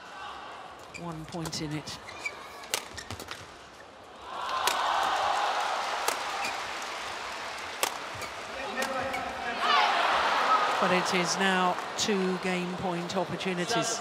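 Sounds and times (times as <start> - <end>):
rackets hitting shuttlecock: 2.6 - 3.5, 6.0 - 6.6, 7.8 - 9.3
crowd cheering and shouting: 4.2 - 6.7, 9.4 - 11.3.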